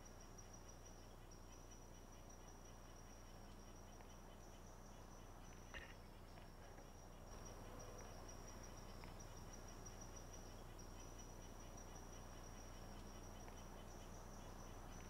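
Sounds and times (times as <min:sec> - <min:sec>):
insects trilling: 0:00.0 - 0:15.0.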